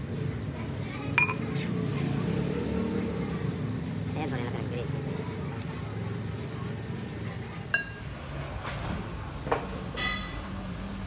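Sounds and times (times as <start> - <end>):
metal ring clinking on shaft: 10.0 - 10.5.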